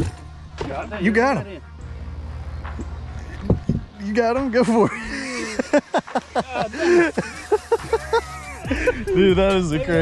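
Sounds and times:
man laughing: 4.6 - 9.3.

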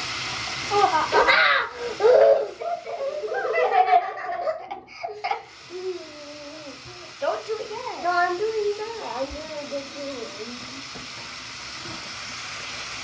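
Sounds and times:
children giggling: 0.7 - 5.6.

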